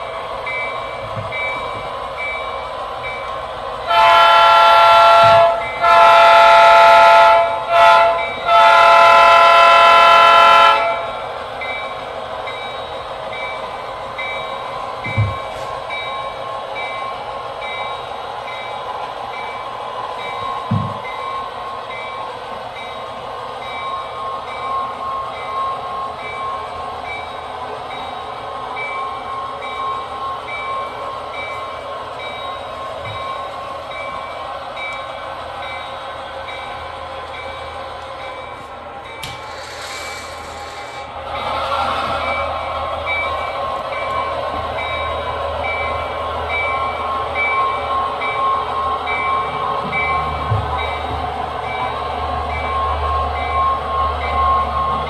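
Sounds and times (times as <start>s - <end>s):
model locomotive running sound: 0.0s - 55.0s
steam locomotive whistle blasts: 3.9s - 11.2s.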